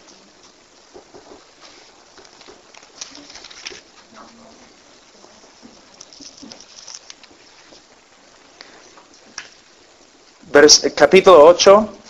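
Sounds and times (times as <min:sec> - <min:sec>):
pages rustling: 0:00.0 - 0:09.7.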